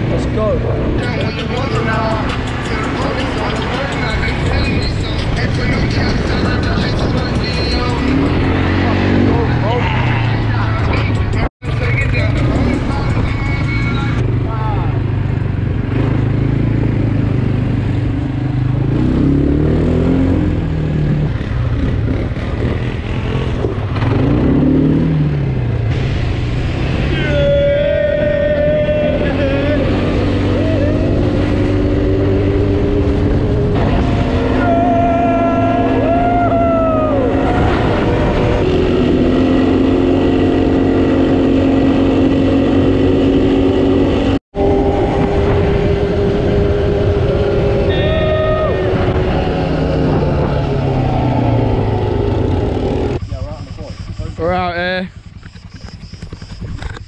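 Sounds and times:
quad bike engine running: 0.0 - 57.0
riders shouting and whooping: 0.4 - 10.9, 27.0 - 32.7, 33.9 - 38.8, 44.6 - 52.4
wind rushing over microphone: 3.4 - 11.5, 25.3 - 53.2.

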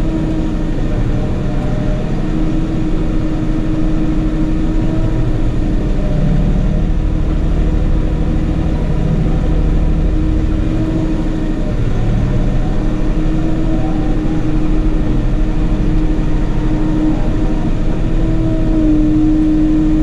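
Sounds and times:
tractor engine rumbling: 0.0 - 20.0.

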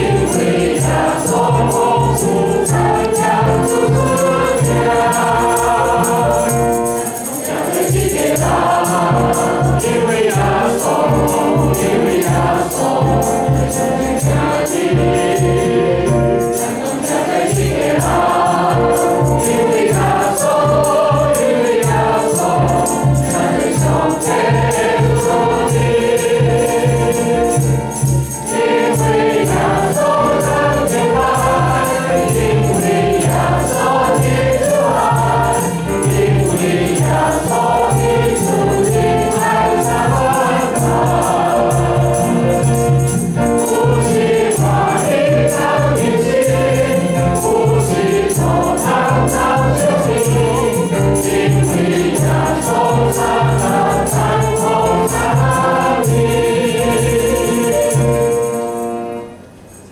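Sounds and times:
congregation and choir singing a hymn: 0.0 - 59.9.

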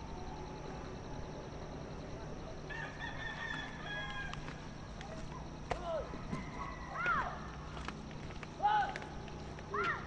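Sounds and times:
rooster crowing: 2.7 - 4.5.

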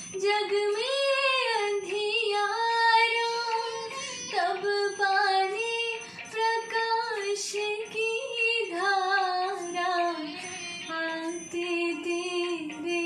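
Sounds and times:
woman singing devotional song: 0.0 - 13.0.

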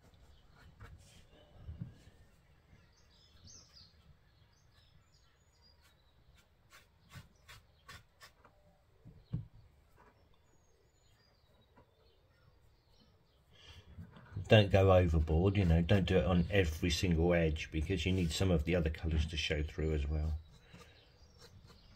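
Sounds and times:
faint bird chirps: 0.0 - 14.5, 19.6 - 21.9.

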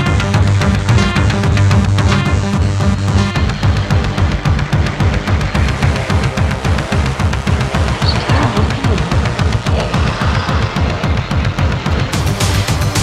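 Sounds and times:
pulsing synth bass: 0.0 - 13.0
fast electronic beat: 0.5 - 13.0.

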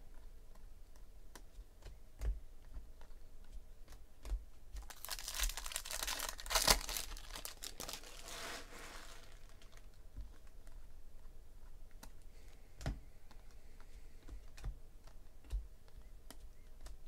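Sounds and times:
foil wrapper tearing and crinkling: 4.8 - 10.5.

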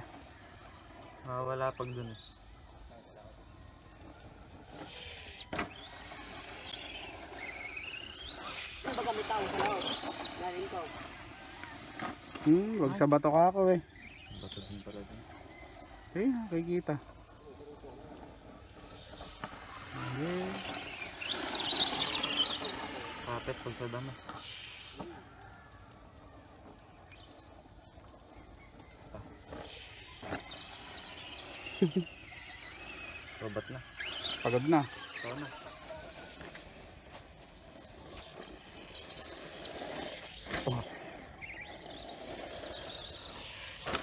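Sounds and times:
electric motor whining: 0.0 - 44.0.

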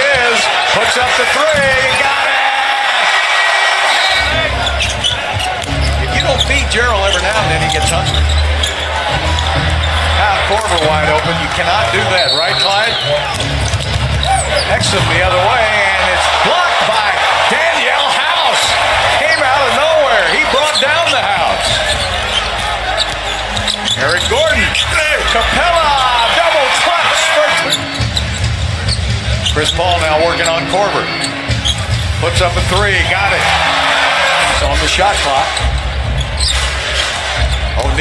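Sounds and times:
crowd cheering: 0.0 - 38.0
basketball bouncing: 1.0 - 2.0, 13.3 - 25.4
sneakers squeaking on court: 3.9 - 32.2, 34.1 - 38.0.

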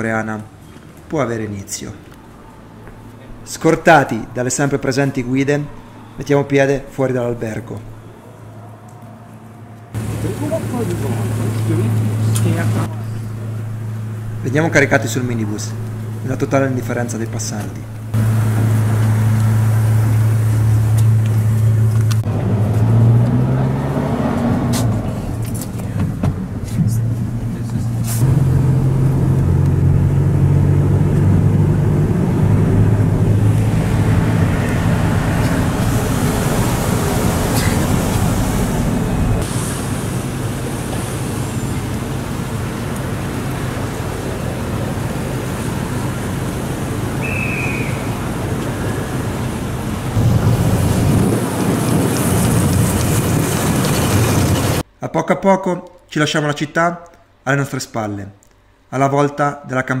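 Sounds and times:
minibus engine hum: 0.0 - 54.9
road traffic: 0.0 - 55.0.

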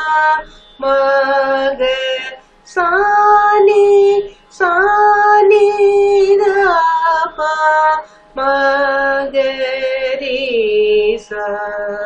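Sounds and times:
woman singing vocal exercise: 0.0 - 12.0
breath: 0.5 - 0.7, 2.4 - 2.6, 4.3 - 4.5, 8.0 - 8.4.

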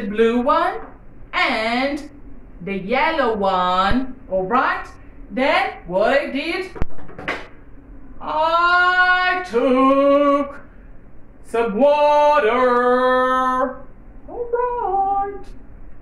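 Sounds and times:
woman singing unaccompanied: 8.2 - 10.6.

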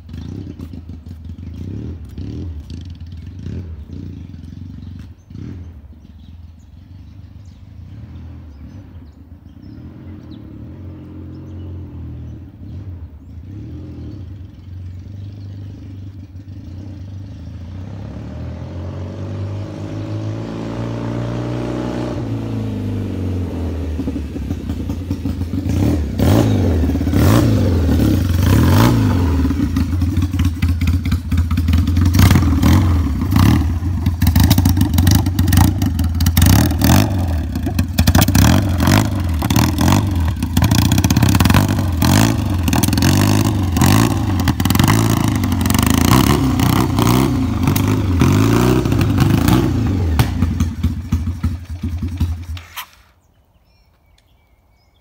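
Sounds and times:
motorcycle engine revving: 0.0 - 53.2
exhaust crackles: 18.4 - 53.3.

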